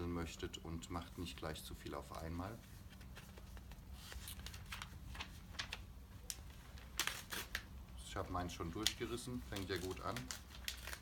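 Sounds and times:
paper tearing and rustling: 6.7 - 7.7, 8.8 - 11.0.

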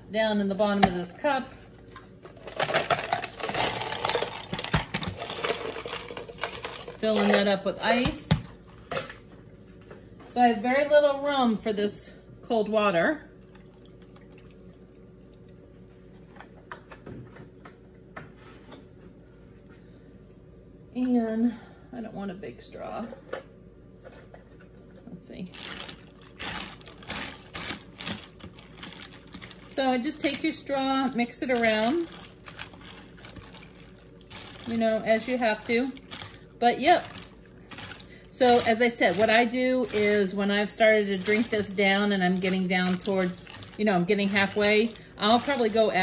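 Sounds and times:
ice cubes clinking into tumbler: 2.3 - 8.1, 25.5 - 46.0.

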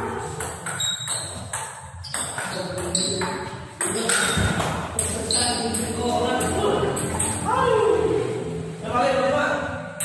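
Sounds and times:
table tennis ball hits: 0.1 - 7.5.

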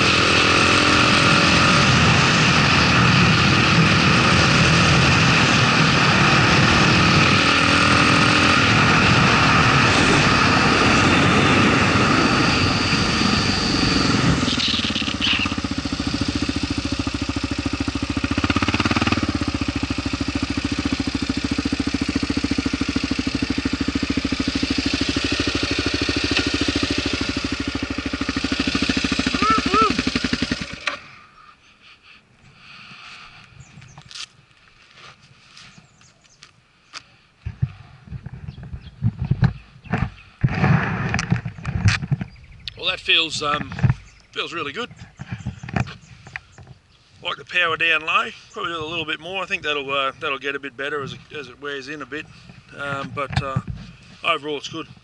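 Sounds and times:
wind noise on microphone: 0.0 - 16.3, 37.4 - 46.9, 52.2 - 55.0
motorcycle engine running: 0.0 - 31.1, 37.5 - 46.9, 47.5 - 55.0.

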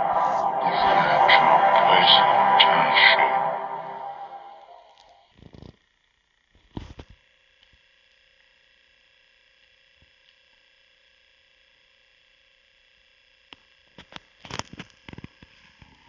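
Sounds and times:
thin high tones: 0.0 - 5.2.

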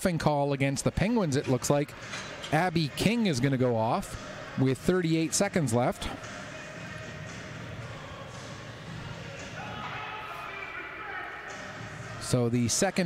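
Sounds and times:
large hall background noise: 0.0 - 13.0
faint indistinct voices: 0.8 - 13.0.

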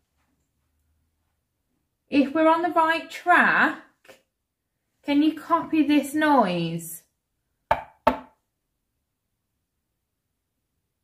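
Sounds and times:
sharp knock on hard surface: 7.7 - 8.4.

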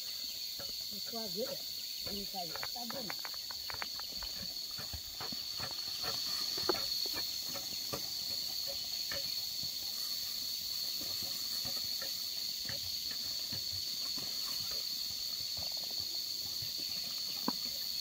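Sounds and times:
footsteps on dry soil: 0.0 - 18.0
high-pitched insect drone: 0.0 - 18.0
wooden pole striking soil: 2.0 - 9.4.

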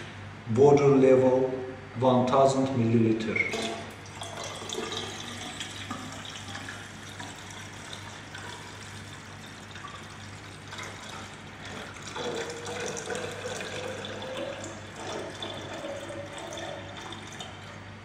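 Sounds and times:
water pouring into glass cylinder: 3.3 - 17.8.

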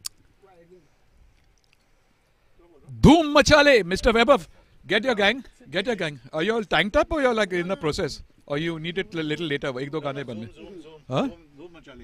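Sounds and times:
faint clicks: 1.3 - 2.4.

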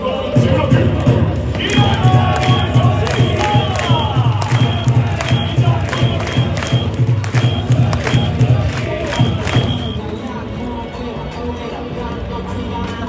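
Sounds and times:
crowd noise: 0.0 - 13.0
upbeat music over loudspeakers: 0.0 - 13.0.

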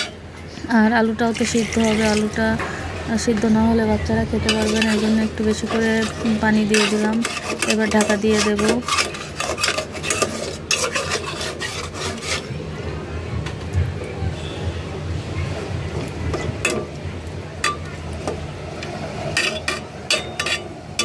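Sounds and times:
metal spatula scraping a pot: 0.0 - 0.2, 1.3 - 2.4, 4.4 - 12.6, 19.3 - 21.0.

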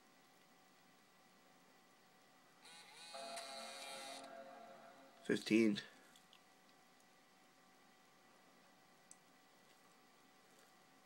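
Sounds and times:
laptop startup chime: 3.1 - 5.3.

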